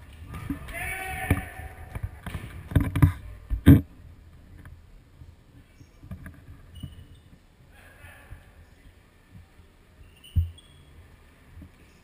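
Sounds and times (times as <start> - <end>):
player shouting: 0.7 - 1.9.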